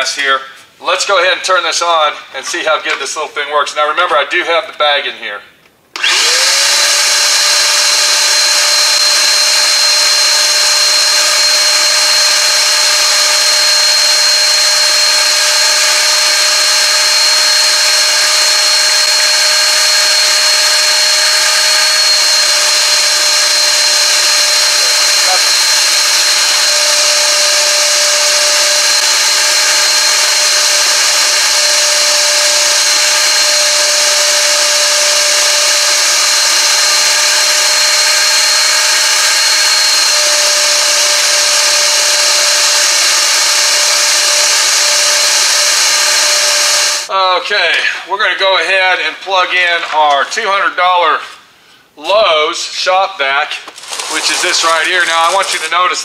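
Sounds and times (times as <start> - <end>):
shop vacuum whining: 5.9 - 48.4, 51.9 - 56.0
vacuum sucking up dry leaves: 53.7 - 56.0.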